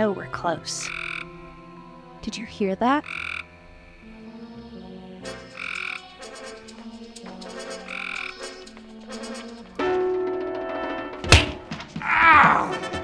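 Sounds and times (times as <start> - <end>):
background music with low notes: 0.0 - 13.0
frog croaking: 0.2 - 9.6.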